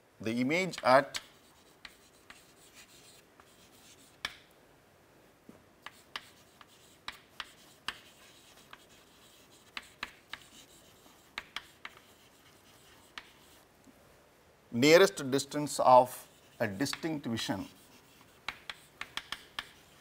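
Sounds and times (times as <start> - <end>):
chalk tapping and scratching: 0.6 - 4.5, 5.8 - 13.6, 16.1 - 20.0.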